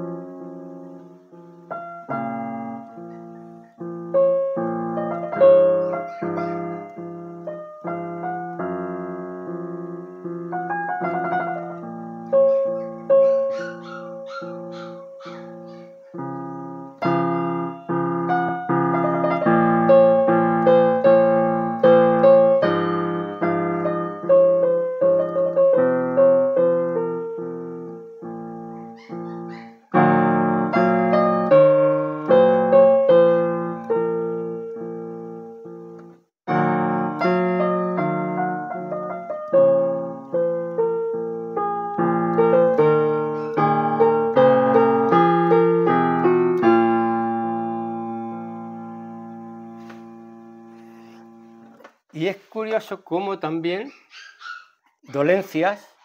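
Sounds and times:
digital piano chords and melody: 0:00.0 - 0:56.0.

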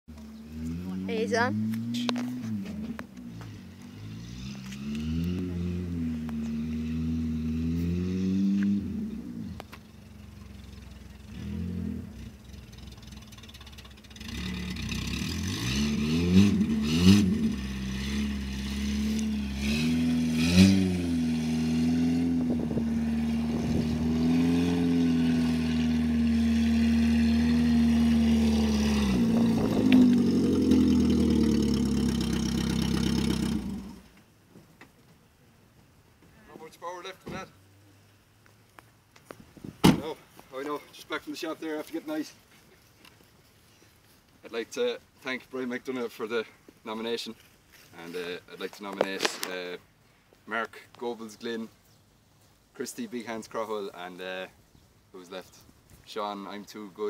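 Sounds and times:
car engine revving: 0:00.2 - 0:34.1.

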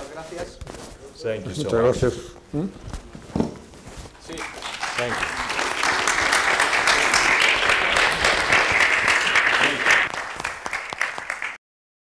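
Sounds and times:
audience applauding: 0:04.2 - 0:11.6.

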